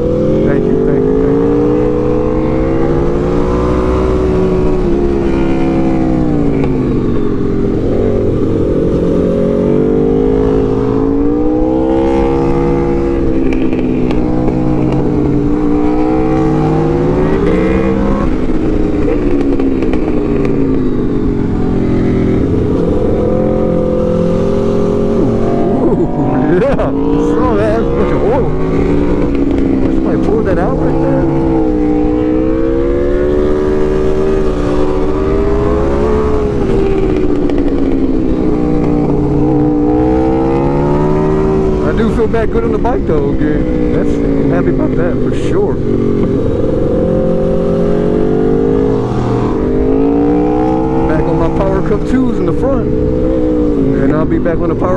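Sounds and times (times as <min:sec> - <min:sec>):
motorcycle engine: 0:00.0 - 0:54.9.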